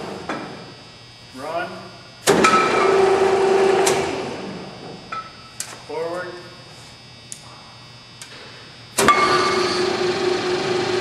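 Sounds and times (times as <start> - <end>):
pipe threader mechanical whine: 0.0 - 11.0.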